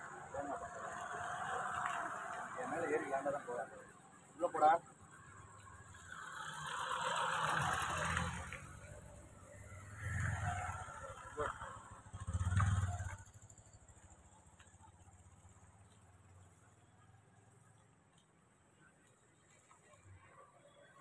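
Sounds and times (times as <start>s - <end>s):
vehicles passing on road: 0.0s - 21.0s.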